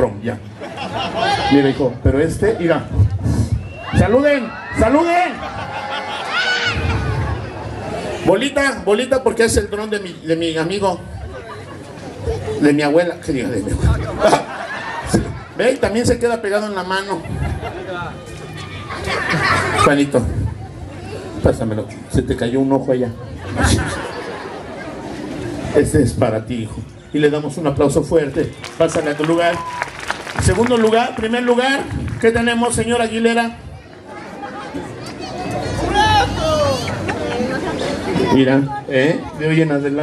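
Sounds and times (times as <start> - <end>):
children chattering: 9.8 - 16.0, 16.6 - 25.7, 33.0 - 40.0.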